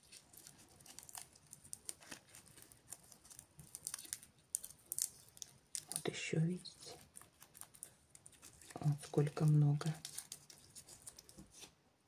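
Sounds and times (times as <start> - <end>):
dry seed capsules crackling: 0.0 - 11.7.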